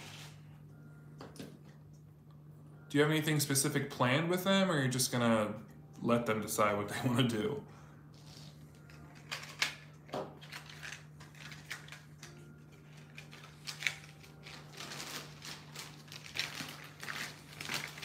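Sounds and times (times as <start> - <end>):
plastic bag rustling: 13.0 - 18.0.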